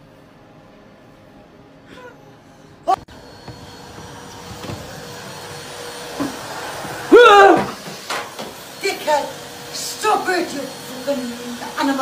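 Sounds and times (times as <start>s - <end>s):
vacuum cleaner running: 2.9s - 12.0s.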